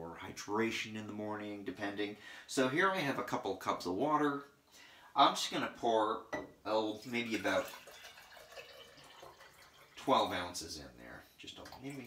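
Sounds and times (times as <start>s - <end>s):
water pouring into a glass jar: 6.9s - 10.6s, 11.4s - 12.0s.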